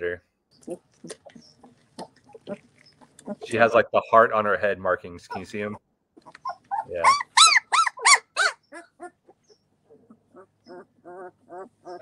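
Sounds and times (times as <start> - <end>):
puppy whining: 2.3 - 3.8, 6.2 - 12.0.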